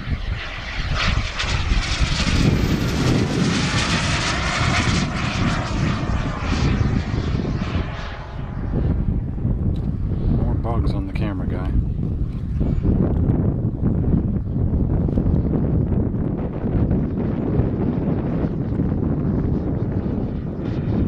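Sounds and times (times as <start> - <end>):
jet turbine whoosh and whine: 0.0 - 21.0.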